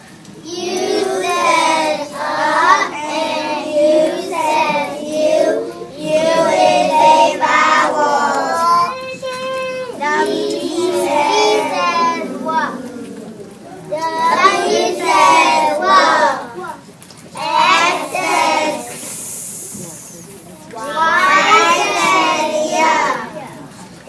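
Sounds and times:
children singing together: 0:00.4 - 0:16.7, 0:17.3 - 0:19.7, 0:20.7 - 0:23.5.

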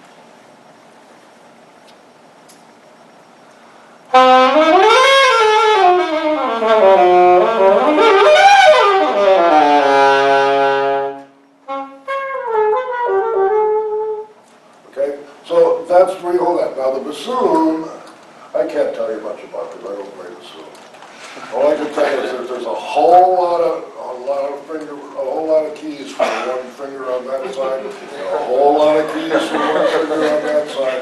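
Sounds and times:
alto saxophone playing: 0:04.0 - 0:14.5
man's voice: 0:21.5 - 0:31.0.

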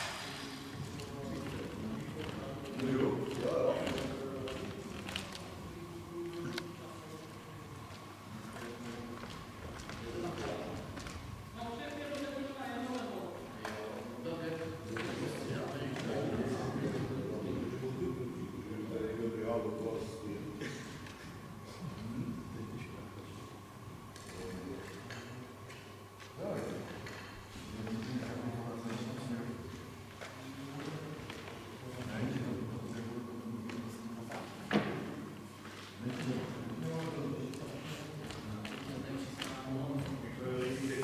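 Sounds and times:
people talking in echoing hall: 0:00.0 - 0:41.0.

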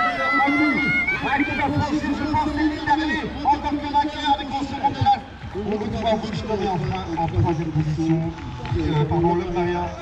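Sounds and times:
man race commentary: 0:00.0 - 0:10.0.

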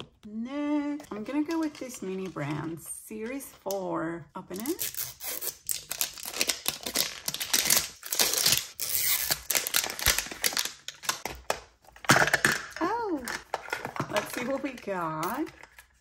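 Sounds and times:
plastic wrapping crinkling and tearing: 0:04.6 - 0:11.5.

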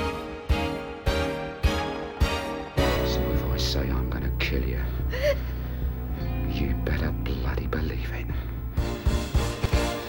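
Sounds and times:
low dark background music: 0:00.0 - 0:10.0.

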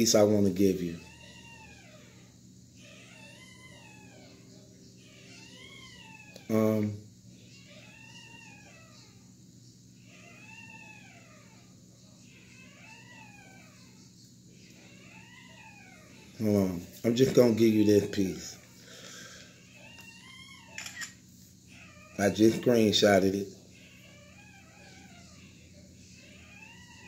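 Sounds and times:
faint cat meowing: 0:01.0 - 0:09.2, 0:19.6 - 0:27.0.

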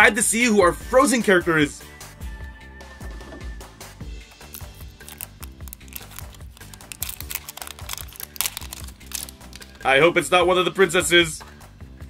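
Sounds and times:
background music: 0:00.0 - 0:12.0
plastic wrap crinkling: 0:04.4 - 0:09.8.

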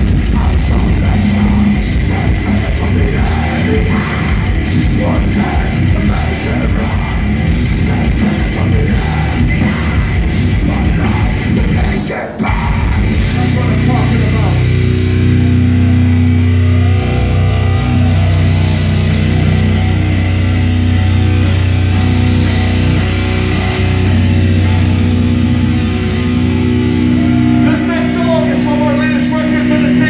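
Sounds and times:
death metal band playing loud: 0:00.0 - 0:30.0.

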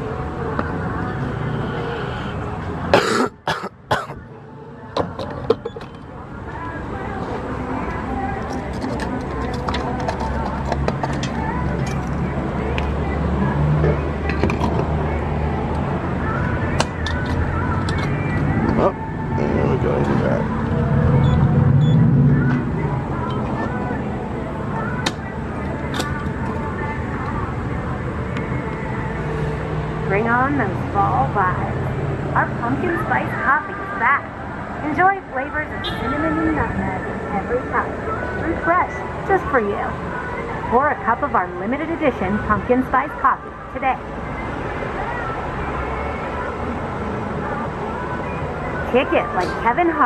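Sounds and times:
traffic noise: 0:00.0 - 0:50.0
person coughing: 0:02.9 - 0:04.2.

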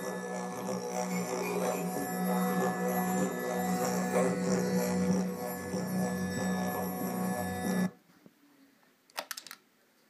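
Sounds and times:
music from speaker dock: 0:00.0 - 0:08.0.

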